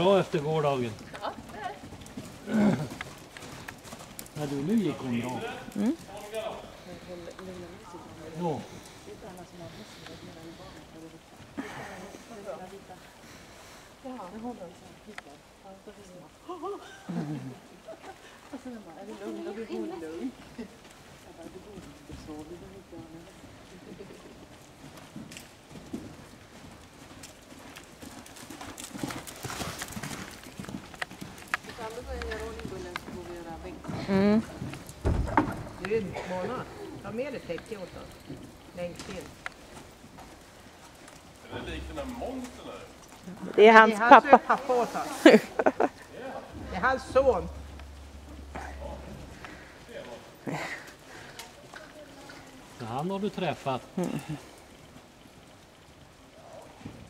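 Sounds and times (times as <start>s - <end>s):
horse hoofbeats on sand: 0.0s - 11.6s, 19.0s - 43.6s
horse grunting: 2.4s - 3.2s
dull hoof thuds: 28.9s - 40.6s.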